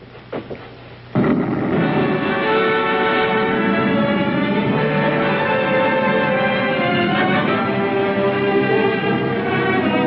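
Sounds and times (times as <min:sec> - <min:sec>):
orchestral music with sustained strings: 0:01.8 - 0:10.0.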